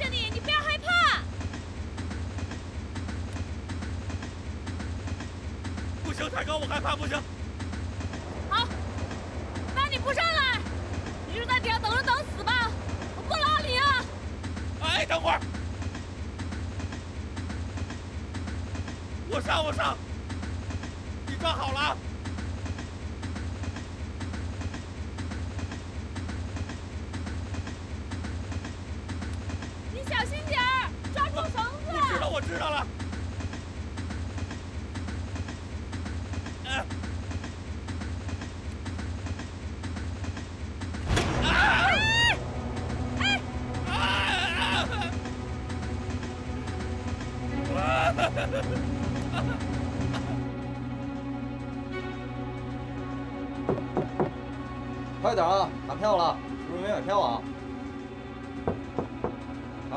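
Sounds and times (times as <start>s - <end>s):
dialogue: 0.0s - 37.6s, 41.0s - 59.9s
train rumbling: 0.0s - 59.9s.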